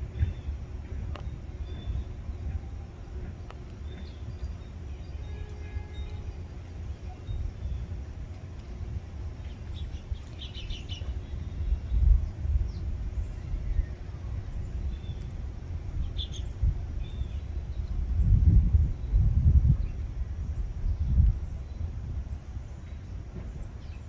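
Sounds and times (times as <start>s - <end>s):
songbirds chirping: 0.0s - 24.0s.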